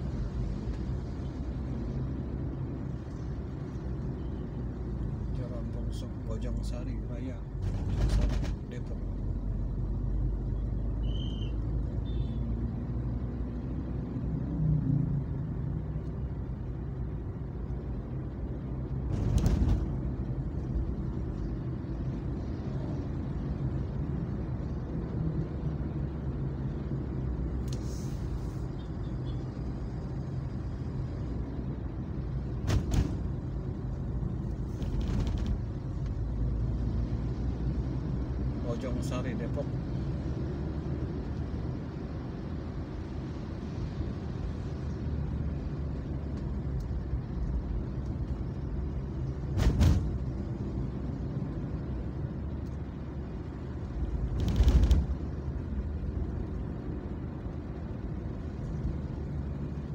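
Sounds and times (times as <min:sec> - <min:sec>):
car driving in traffic: 0:00.0 - 0:59.9.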